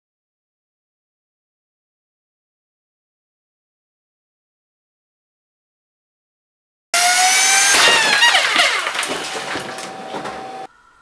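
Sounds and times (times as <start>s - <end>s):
electric motor whining: 7.0s - 11.0s
crackling clattering racket: 7.6s - 10.7s.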